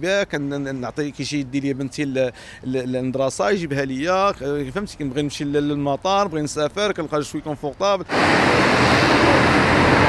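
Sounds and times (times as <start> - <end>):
outdoor street ambience: 0.0 - 10.0.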